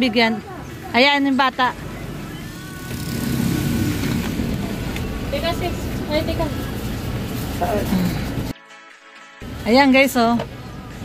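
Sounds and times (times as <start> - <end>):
faint voices talking: 0.0 - 3.7.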